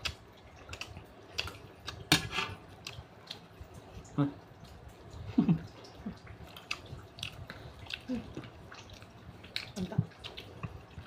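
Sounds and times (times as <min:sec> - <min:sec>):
lip smacks and mouth clicks: 0:06.5 - 0:11.0.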